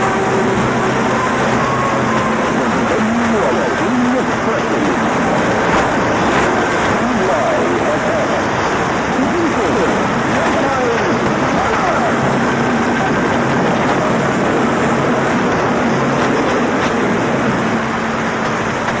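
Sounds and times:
radio static and hiss: 0.0 - 19.0
faint radio voice: 6.5 - 8.5.

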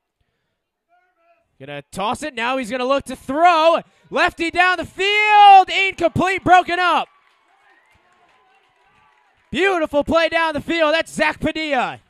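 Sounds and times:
commentator speaking: 1.6 - 7.0, 9.6 - 12.0.

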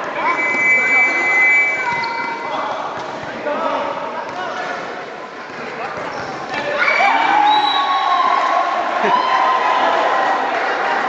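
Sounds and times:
players and spectators calling out: 0.0 - 3.0, 5.7 - 11.0.

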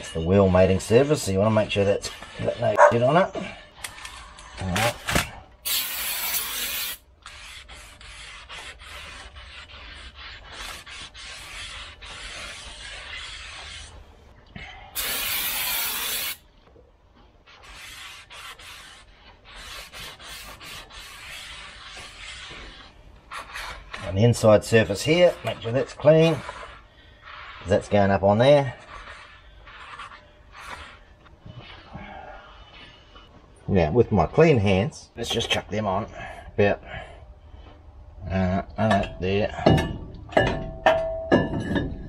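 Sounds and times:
rag wiping metal: 0.0 - 3.6, 5.6 - 14.3, 15.0 - 16.4, 17.5 - 31.8
loud hissing bursts: 5.6 - 7.0, 15.0 - 16.4.

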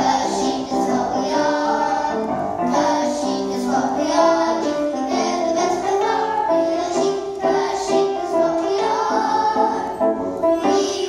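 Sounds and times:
young children singing: 0.0 - 11.0.

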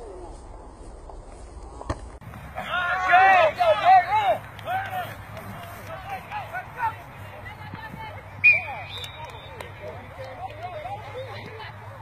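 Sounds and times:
spectators shouting: 2.5 - 7.1.

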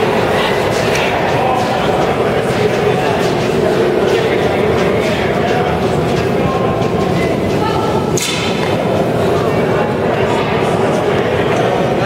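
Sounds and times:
busy rink noise: 0.0 - 12.0.

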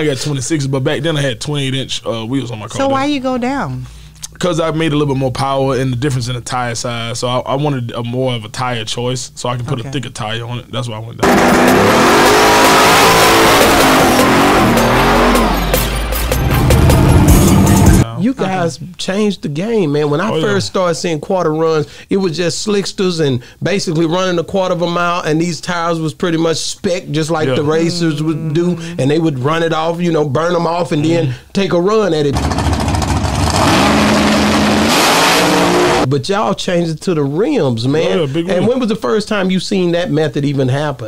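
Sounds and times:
tires spinning: 11.2 - 15.8, 32.4 - 36.1
car engine revving: 11.2 - 18.0, 32.3 - 36.1
music with regular beat: 11.4 - 18.0.

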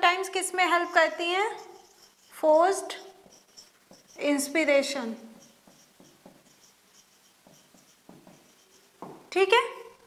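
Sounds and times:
marker writing on whiteboard: 0.0 - 9.3.

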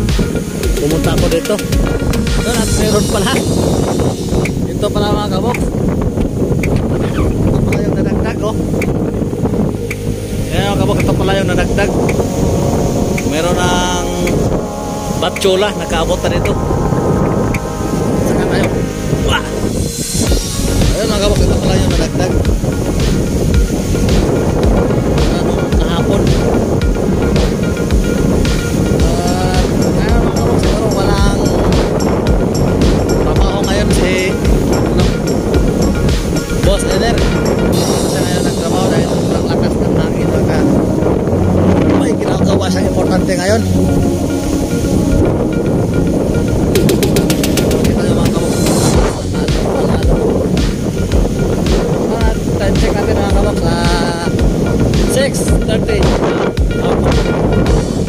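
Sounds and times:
background music: 0.0 - 58.0
wind buffeting microphone: 0.0 - 58.0.

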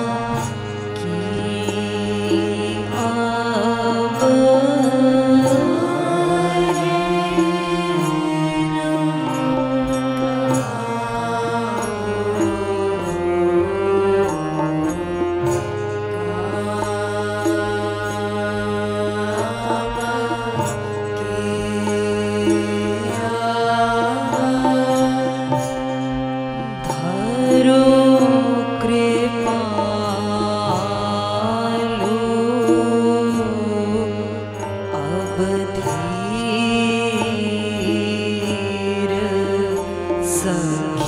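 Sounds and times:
harmonium chords: 0.0 - 41.0.

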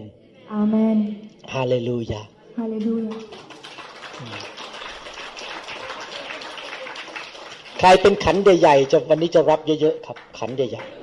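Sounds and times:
congregation applauding: 3.1 - 11.0.

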